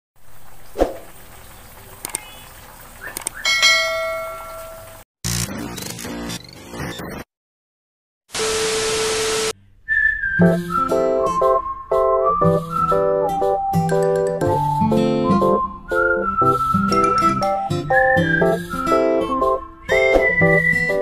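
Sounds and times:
bell-like chime: 3.5s - 5.0s
electronic glitch sting: 5.3s - 7.3s
static hiss: 8.3s - 9.6s.

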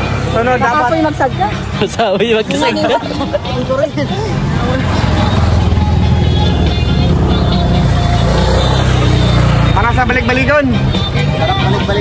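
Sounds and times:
motorcycle engine rumbling: 0.0s - 12.0s
music playing: 0.0s - 12.0s.

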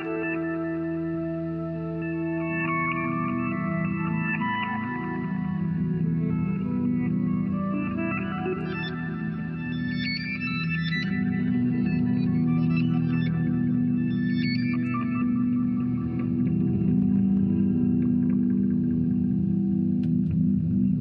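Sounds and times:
electric guitar drone: 0.0s - 21.0s.

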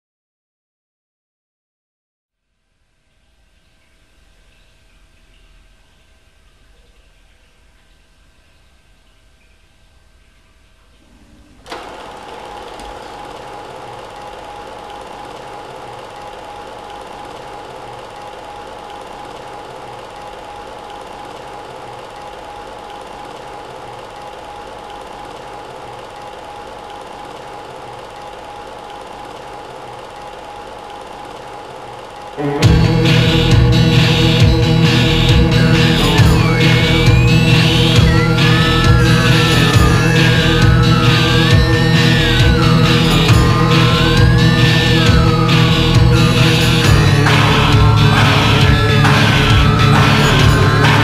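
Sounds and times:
faint hum: 2.4s - 51.0s
film projector rattling: 11.6s - 32.4s.

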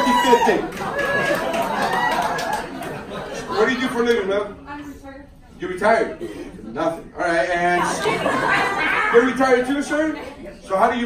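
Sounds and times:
audience laughing and chattering: 0.0s - 5.1s, 6.0s - 11.0s.

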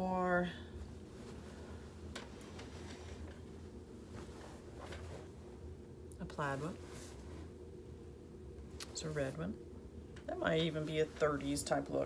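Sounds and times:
steady low hum: 0.0s - 12.0s
quilt being handled: 0.8s - 5.6s, 6.4s - 7.6s.

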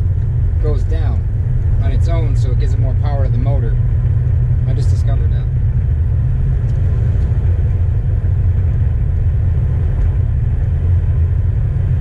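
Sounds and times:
engine and road rumble in cab: 0.0s - 12.0s.

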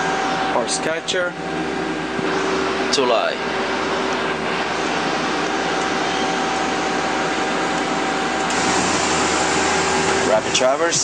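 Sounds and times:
lathe machine hum: 0.0s - 11.0s.

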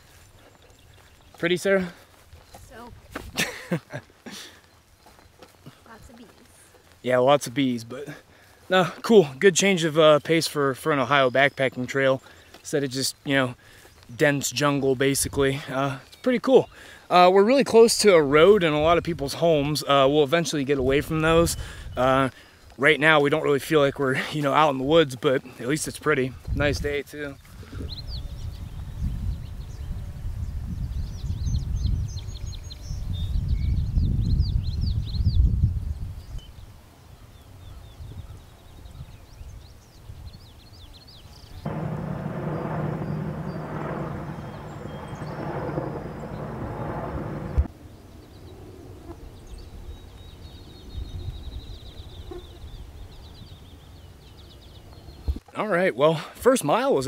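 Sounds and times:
birds chirping: 0.0s - 30.0s, 36.2s - 57.0s
wind buffeting microphone: 18.1s - 22.3s, 25.8s - 36.8s, 37.4s - 40.9s, 41.5s - 48.6s, 49.2s - 55.4s
helicopter droning overhead: 41.7s - 49.4s.

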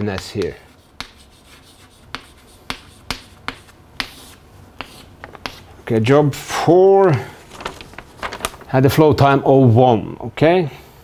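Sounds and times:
chalk tapping on a chalkboard: 0.0s - 5.7s.

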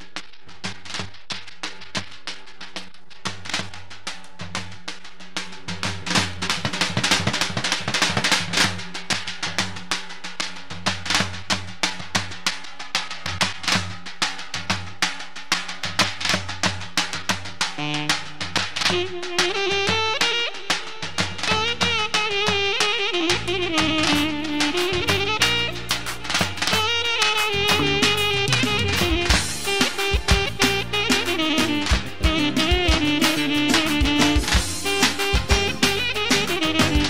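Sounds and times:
drums playing fast rhythm: 0.0s - 37.0s
low bass line: 27.6s - 29.6s.

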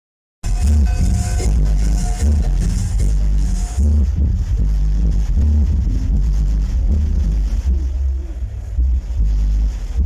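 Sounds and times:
electronic dance music with heavy bass: 0.4s - 10.0s.

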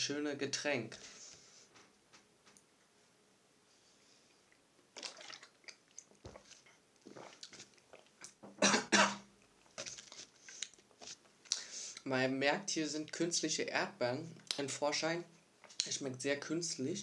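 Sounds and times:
person gulping and breathing: 4.3s - 8.4s, 11.5s - 12.0s
person coughing: 8.6s - 9.3s.

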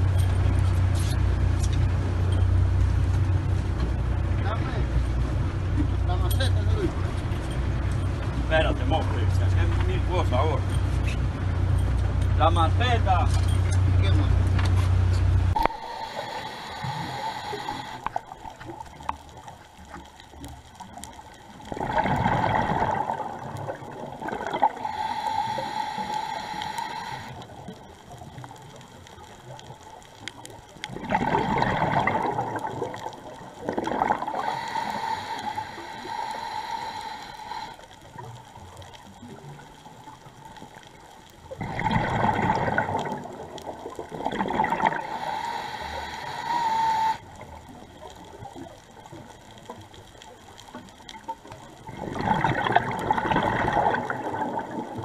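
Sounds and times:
thin steady tone: 15.5s - 18.4s, 24.5s - 27.9s, 34.1s - 38.0s, 44.8s - 47.4s
exhaled bubbles rushing: 21.6s - 26.4s, 30.9s - 35.2s, 41.5s - 49.2s, 51.8s - 55.0s.

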